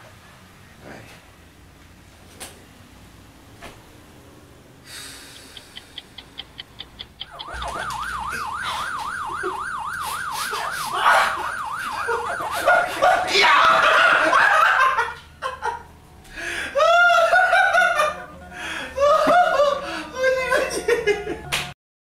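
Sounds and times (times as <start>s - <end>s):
rapid ticks: 5.2s - 8.0s
warbling siren-like tone: 7.2s - 14.4s.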